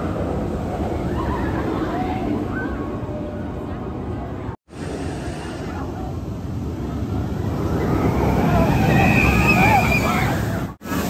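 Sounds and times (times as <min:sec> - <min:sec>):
roller coaster rumbling on track: 0:00.0 - 0:11.0
riders screaming: 0:07.8 - 0:10.7.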